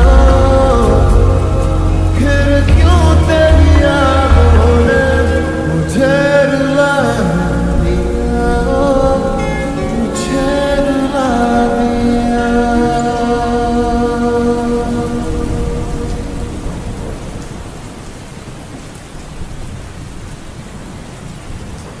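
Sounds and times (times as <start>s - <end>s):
low thunder rumble: 0.0s - 18.7s
steady rain: 0.0s - 22.0s.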